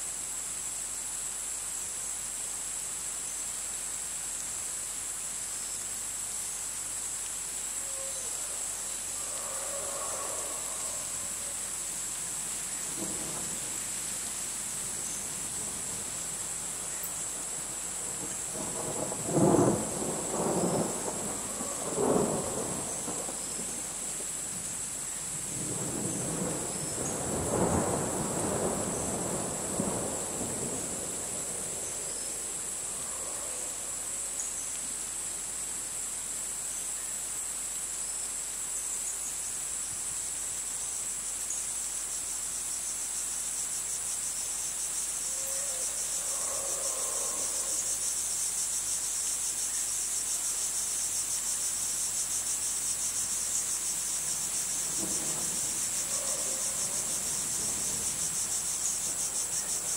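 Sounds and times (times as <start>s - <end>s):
crickets chirring: 0.0s - 59.9s.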